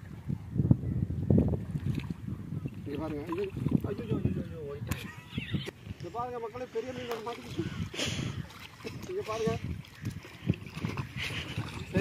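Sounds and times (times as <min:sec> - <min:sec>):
wind rumble on microphone: 0:00.0 - 0:12.0
splashing in shallow water: 0:01.6 - 0:05.4, 0:06.7 - 0:12.0.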